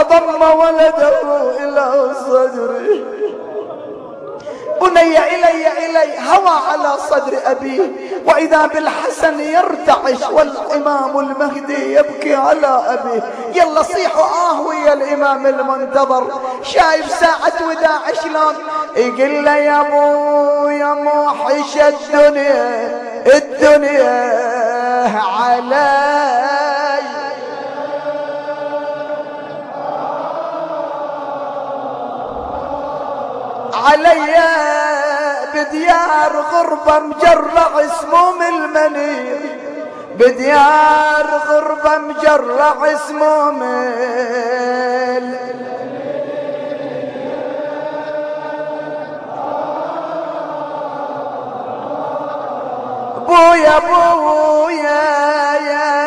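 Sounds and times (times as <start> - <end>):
man chanting a lament: 0.0 - 56.0.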